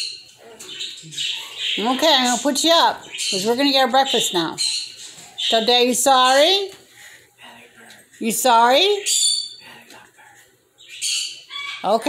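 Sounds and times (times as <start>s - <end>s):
cockatoo squawk: 11.0s - 12.0s.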